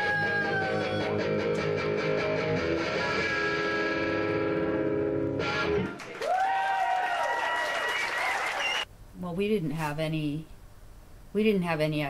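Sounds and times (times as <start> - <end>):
distorted electric guitar: 0.0 - 6.0.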